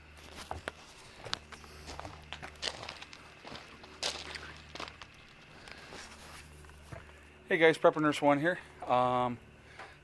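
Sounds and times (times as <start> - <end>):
footsteps crunching on gravel: 0.0 - 7.2.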